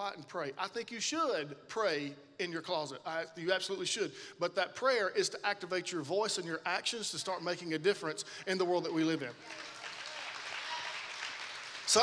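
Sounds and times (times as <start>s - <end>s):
man's voice: 0.0s - 9.4s
congregation applauding: 9.4s - 12.0s.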